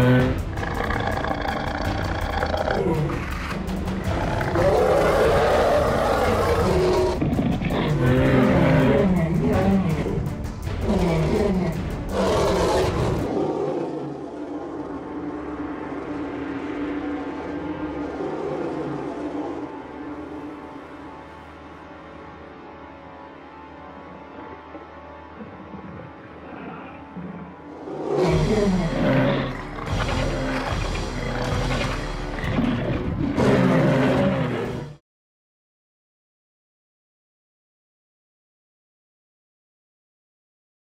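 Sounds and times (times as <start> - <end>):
dinosaur roars over loudspeakers: 0.0 - 3.3, 4.0 - 10.2, 10.8 - 20.6, 26.4 - 35.0
music: 0.0 - 35.0
low rumbling drone: 12.9 - 33.3.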